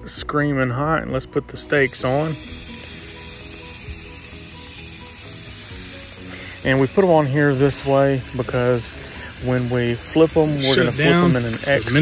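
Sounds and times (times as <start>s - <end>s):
faint music: 0.0s - 12.0s
steaks sizzling on a grill: 1.6s - 12.0s.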